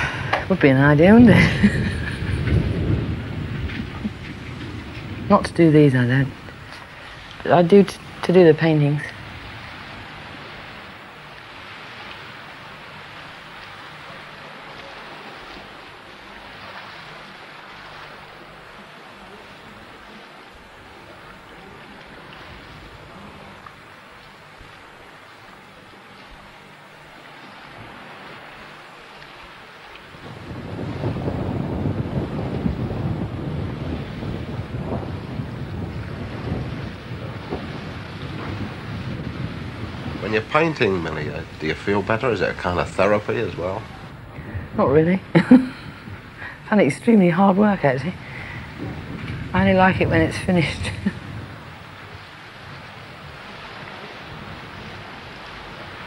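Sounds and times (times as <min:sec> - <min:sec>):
sea waves washing: 0:00.0 - 0:56.0
wind: 0:00.0 - 0:56.0.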